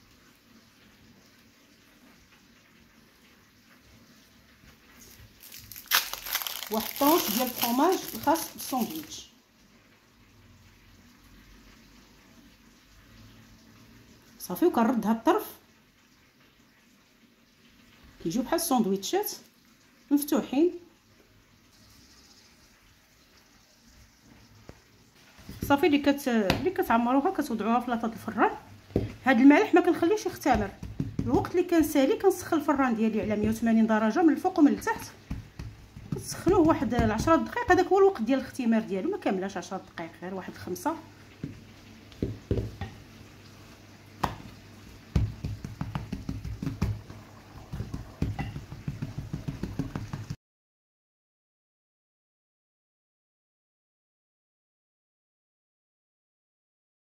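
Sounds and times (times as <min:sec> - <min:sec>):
rolling pin knocking on dough: 0:30.4 - 0:32.0, 0:35.2 - 0:37.8, 0:41.4 - 0:43.0, 0:45.1 - 0:50.4.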